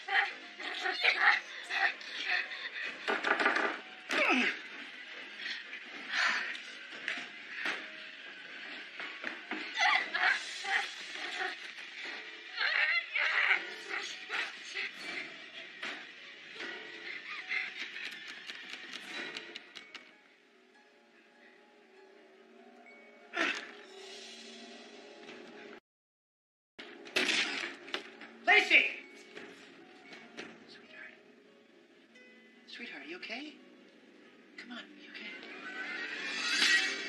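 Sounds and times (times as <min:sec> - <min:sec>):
woman's strained struggling cries: 0:00.0 - 0:03.3, 0:03.9 - 0:06.8.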